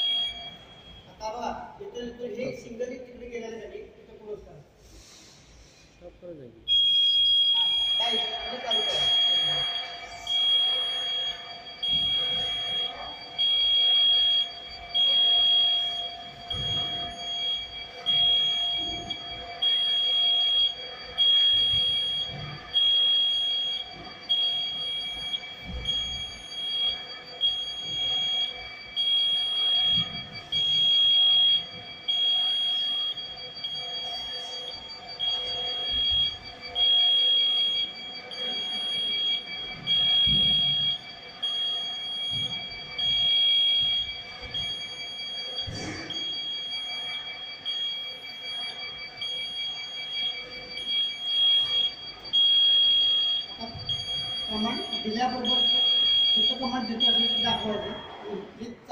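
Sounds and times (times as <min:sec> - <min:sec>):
pulsing warning beeper: 0:00.0 - 0:58.9.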